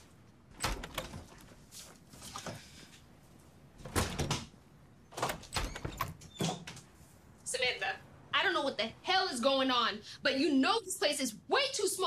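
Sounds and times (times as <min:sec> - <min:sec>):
door clicking: 0:00.5 - 0:01.4, 0:05.1 - 0:06.8.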